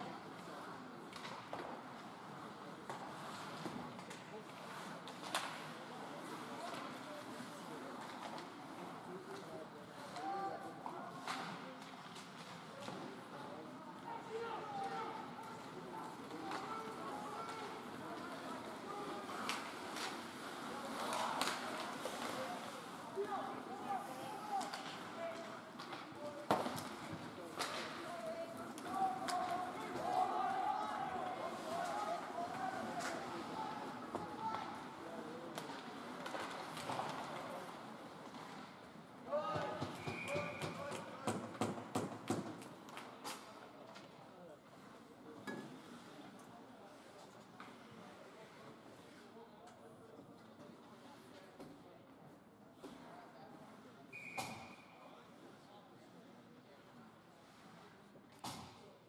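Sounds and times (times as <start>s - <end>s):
murmur of voices: 0.0s - 59.0s
clacks of sticks and puck: 1.0s - 2.1s, 2.8s - 7.1s, 9.2s - 13.3s, 14.8s - 23.0s, 24.5s - 30.3s, 35.5s - 38.7s, 39.3s - 44.2s.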